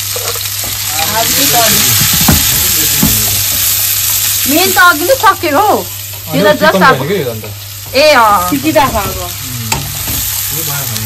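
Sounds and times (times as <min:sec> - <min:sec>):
onions sizzling in hot oil: 0:00.0 - 0:11.0.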